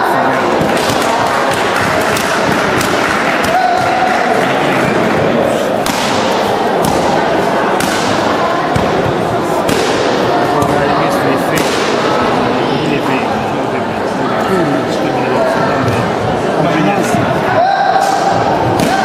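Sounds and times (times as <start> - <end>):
people chattering in a hall: 0.0 - 19.0.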